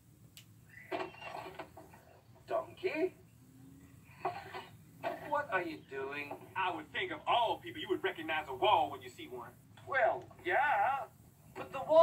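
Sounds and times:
wooden door creaking open: 0.8 - 2.2.

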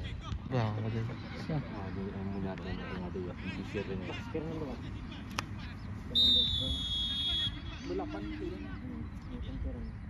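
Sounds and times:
men calling and shouting: 0.0 - 10.0.

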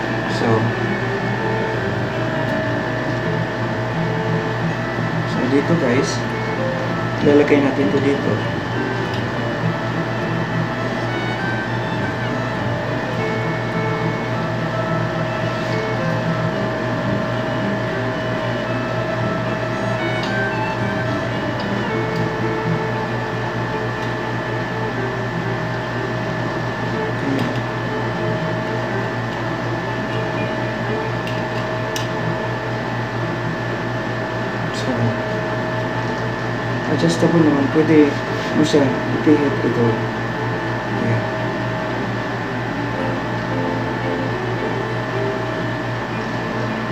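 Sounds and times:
constant hum: 0.0 - 46.9.

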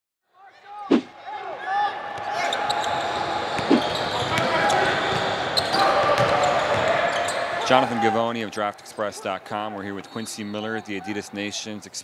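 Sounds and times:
crowd chatter: 0.4 - 12.0
sneaker squeaks: 2.2 - 7.7.

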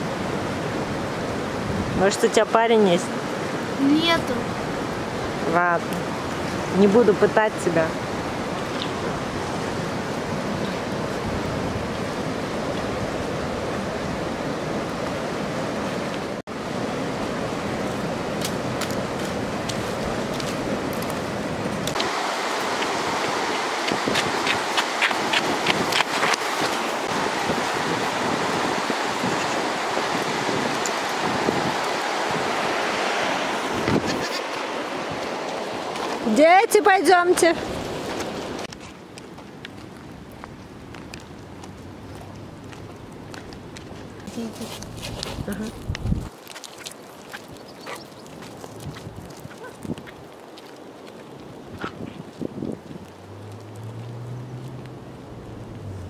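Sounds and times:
river rushing: 0.0 - 45.0, 46.3 - 56.0.

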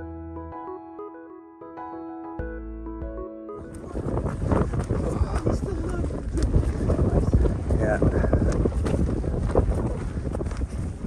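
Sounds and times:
soft keyboard music: 0.0 - 6.1
wind buffeting microphone: 3.6 - 11.0.

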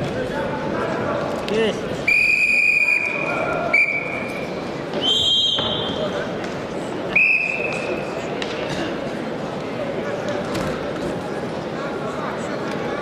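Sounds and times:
crowd murmur: 0.0 - 13.0
referee whistle blasts: 2.1 - 4.4, 5.0 - 6.0.

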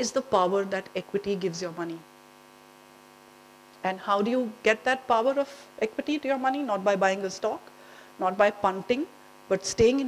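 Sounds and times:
woman speaking: 0.0 - 2.1, 3.8 - 10.0
electrical mains hum: 0.0 - 10.0.

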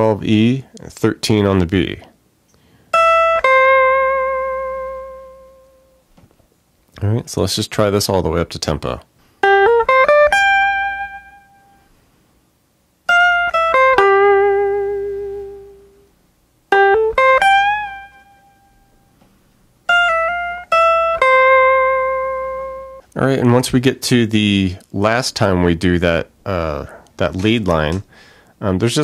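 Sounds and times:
electric guitar lead line: 2.9 - 6.0, 9.4 - 11.9, 13.1 - 16.1, 16.7 - 19.1, 19.9 - 23.0.

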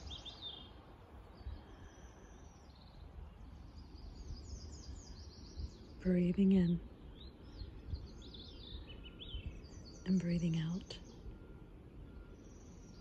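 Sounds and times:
faint low rumble: 0.0 - 13.0
small birds singing: 0.0 - 13.0.

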